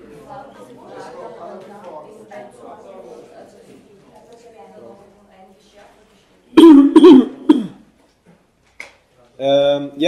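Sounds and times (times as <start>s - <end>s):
man coughing: 6.6s - 7.8s.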